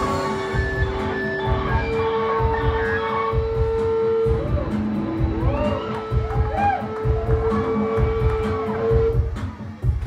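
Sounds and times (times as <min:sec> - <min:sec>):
live band with electric guitar: 0:00.0 - 0:10.0
steady low beat: 0:00.0 - 0:10.0.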